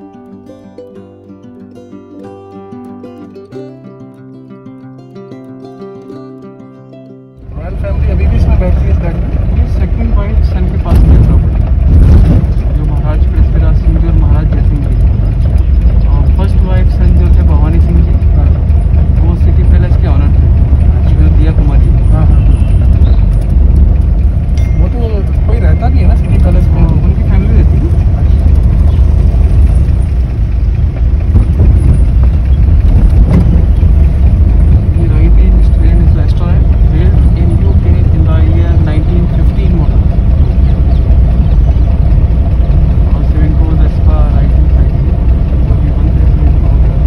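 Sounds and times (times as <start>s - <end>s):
car rumble from inside cabin: 7.4s - 47.0s.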